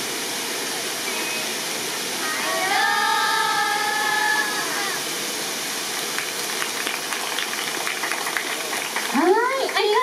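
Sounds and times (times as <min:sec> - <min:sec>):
waterfall rushing over stone: 0:00.0 - 0:10.0.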